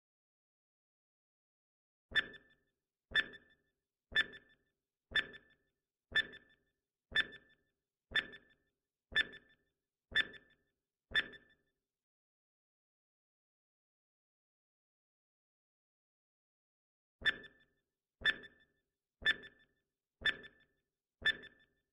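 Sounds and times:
timer ticks with brief ring: 2.2s - 9.6s, 10.2s - 10.6s, 11.2s - 11.6s, 17.2s - 21.8s.

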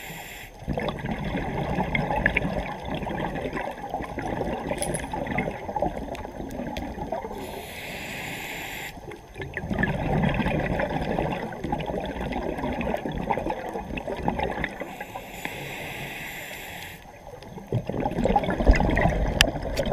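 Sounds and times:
regulator inhalation hiss: 0.0s - 0.6s, 7.4s - 9.1s, 14.9s - 17.1s
exhaust bubbling underwater: 0.6s - 7.4s, 9.2s - 14.9s, 17.5s - 19.9s.

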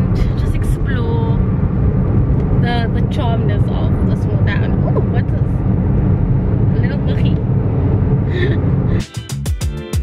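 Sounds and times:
car road rumble: 0.0s - 9.4s
music with regular beat: 9.0s - 10.0s.

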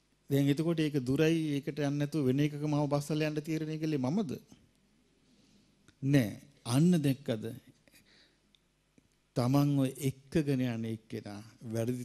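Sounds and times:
man speaking into a microphone: 0.3s - 4.6s, 6.0s - 7.8s, 9.3s - 12.0s
faint breath: 5.2s - 5.8s, 7.9s - 8.6s.

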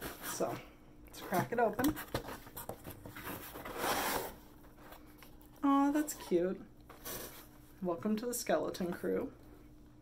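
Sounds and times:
cardboard flap scraping: 2.0s - 4.4s.

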